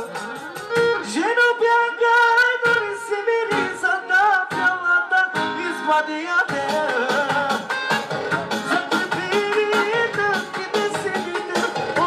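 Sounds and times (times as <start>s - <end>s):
percussive beat: 0.0s - 1.2s, 4.5s - 5.6s, 6.4s - 12.0s
loud dance music with singing: 0.0s - 12.0s
plucked string instrument: 0.0s - 12.0s.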